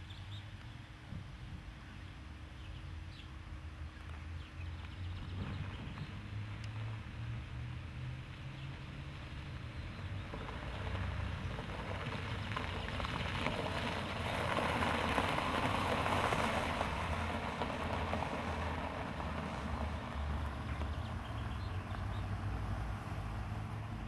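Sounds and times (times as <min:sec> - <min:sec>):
tyres crunching on gravel: 0:10.0 - 0:22.2.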